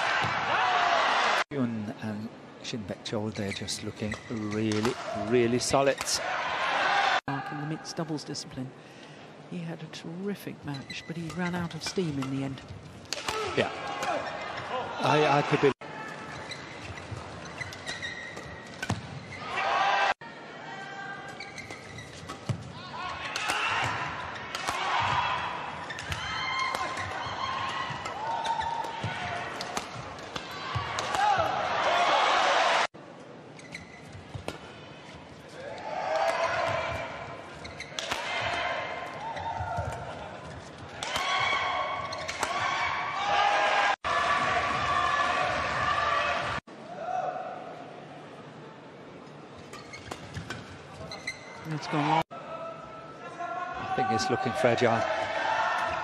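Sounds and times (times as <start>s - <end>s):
indoor hall background noise: 0.0s - 56.0s
badminton rackets hitting shuttlecock: 11.3s - 14.3s, 23.2s - 25.2s, 25.8s - 31.6s, 37.8s - 39.2s, 40.9s - 42.8s
shoes squeaking: 16.0s - 19.6s, 21.2s - 22.7s, 23.5s - 31.5s, 33.4s - 35.7s, 36.3s - 42.7s, 49.6s - 51.9s
people shouting: 22.8s - 29.7s, 30.3s - 32.9s, 41.0s - 47.6s, 53.4s - 56.0s
racket striking shuttlecock: 27.9s - 31.5s, 37.9s - 38.5s.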